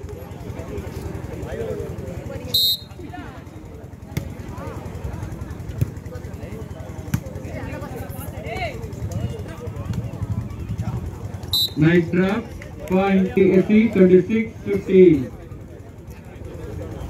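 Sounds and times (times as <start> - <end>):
spectators talking and calling out: 0.0 - 17.0
shrill whistle blast: 2.6 - 3.0, 11.6 - 11.8.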